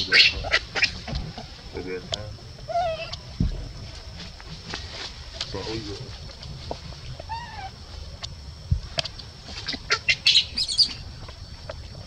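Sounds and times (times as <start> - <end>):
baby monkey squealing: 0.0 - 1.0, 2.7 - 3.2, 7.3 - 7.8, 9.6 - 11.0.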